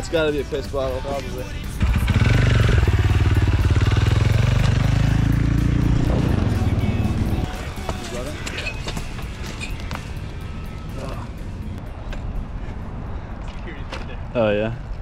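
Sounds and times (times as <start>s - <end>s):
dirt bike engine running: 1.8s - 8.2s.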